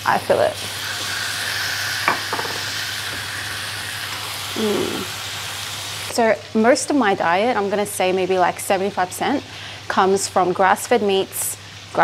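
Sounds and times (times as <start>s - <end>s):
steaks sizzling in butter: 0.0s - 7.7s.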